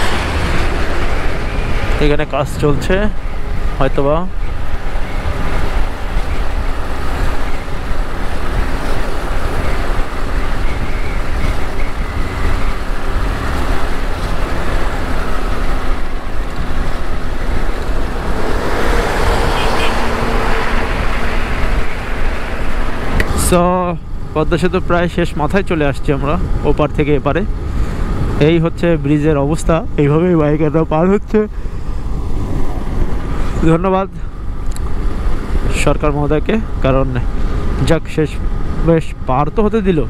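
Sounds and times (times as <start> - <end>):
wind rushing over microphone: 0.0 - 39.8
motorcycle engine hum: 0.0 - 40.0
road noise: 0.0 - 40.0.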